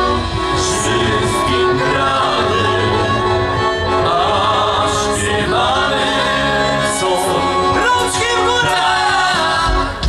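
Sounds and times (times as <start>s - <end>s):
double bass: 0.0s - 10.0s
fiddle: 0.0s - 10.0s
men singing: 0.0s - 10.0s.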